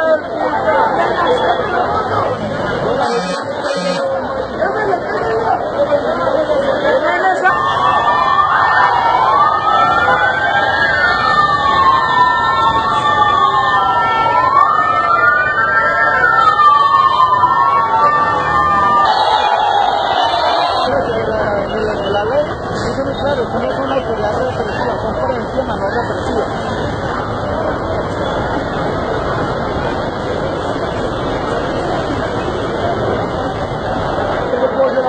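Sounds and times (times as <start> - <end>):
motorcycle sirens wailing: 0.0 - 4.8, 5.6 - 34.5
crowd noise: 0.0 - 35.0.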